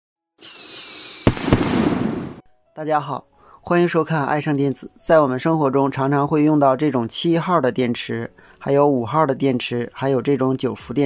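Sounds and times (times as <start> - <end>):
firework bangs: 0.4 - 2.4
firework whistle: 0.4 - 2.4.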